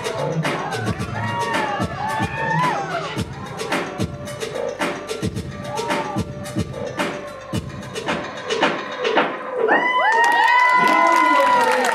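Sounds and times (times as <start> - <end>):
audience cheering and shouting: 0.0 - 4.5, 5.4 - 6.9, 9.5 - 11.9
hip hop dance track: 0.0 - 10.0.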